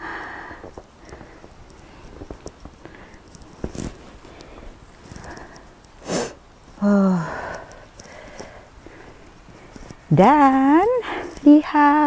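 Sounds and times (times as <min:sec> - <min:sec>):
person breathing and sniffing: 0:00.0 - 0:10.1.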